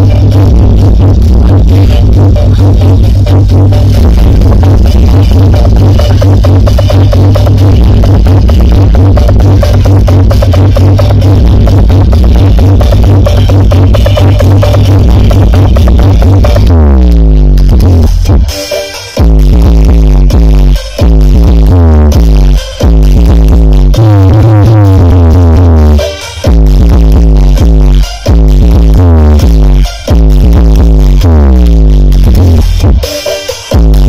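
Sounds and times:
electronic dance music with heavy bass: 0.0s - 34.0s.

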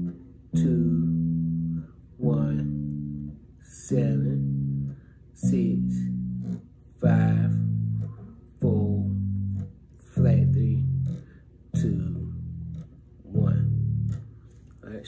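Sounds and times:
plucked bass guitar notes: 0.0s - 15.0s.

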